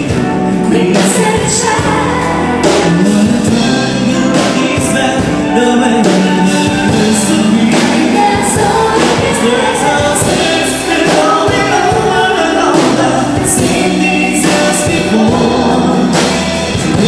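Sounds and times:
drum kit and cymbals: 0.0 - 17.0
person singing: 0.0 - 17.0
pop-rock band playing: 0.0 - 17.0.

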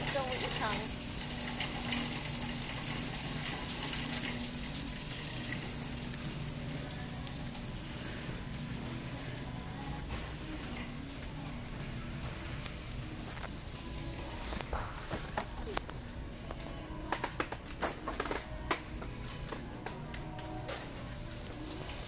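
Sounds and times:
distant shopper voices: 0.0 - 22.0
steady hum: 0.0 - 22.0.

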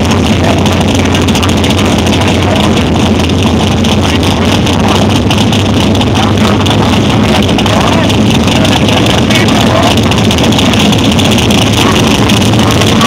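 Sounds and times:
drag car engine running loudly: 0.0 - 13.0.

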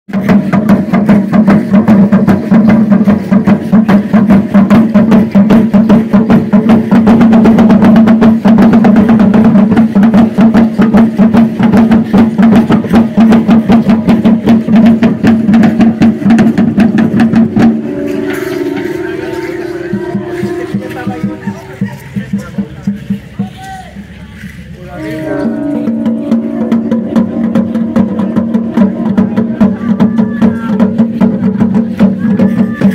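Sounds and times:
drum beaten fast: 0.1 - 32.9.

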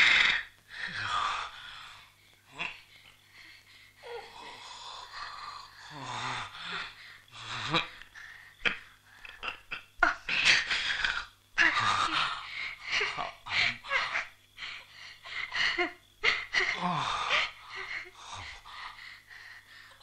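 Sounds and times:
person wheezing and gasping: 2.5 - 20.0.

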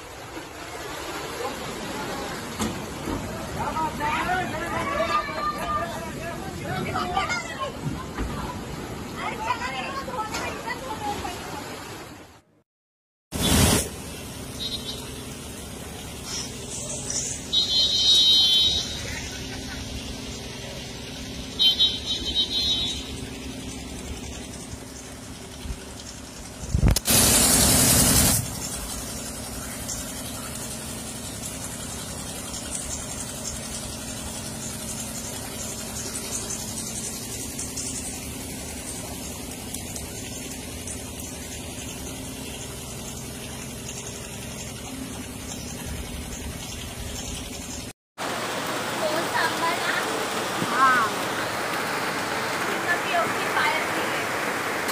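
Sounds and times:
heavy rain: 0.0 - 11.6, 18.7 - 41.6, 48.2 - 54.9
vehicles driving through water: 0.0 - 12.6, 13.4 - 54.9.

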